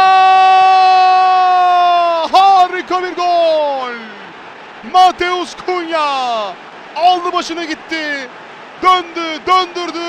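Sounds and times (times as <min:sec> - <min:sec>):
commentator shouting: 0:00.0 - 0:04.2, 0:04.8 - 0:10.0.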